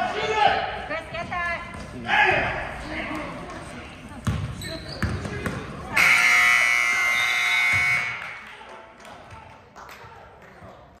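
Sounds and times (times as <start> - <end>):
basketball bouncing on hardwood: 4.2 - 5.6
scoreboard buzzer: 5.9 - 8.4.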